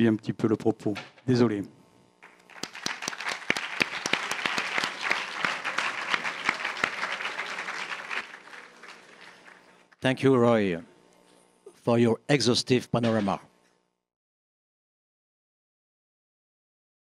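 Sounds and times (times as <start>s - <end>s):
audience applauding: 2.2s - 9.8s.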